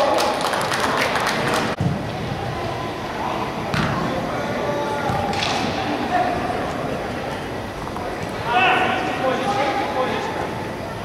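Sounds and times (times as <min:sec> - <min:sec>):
distant voices in hall: 0:00.0 - 0:11.0.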